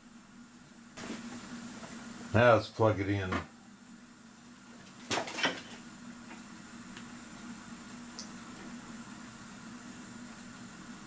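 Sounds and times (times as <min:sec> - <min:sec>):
faint clock motor hum: 0:00.0 - 0:11.0.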